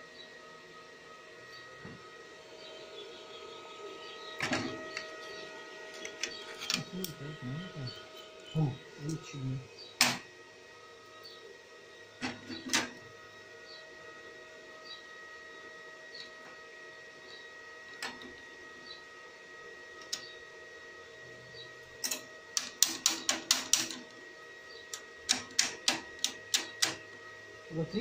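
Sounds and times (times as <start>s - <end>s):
faint high whine: 0.0s - 19.3s.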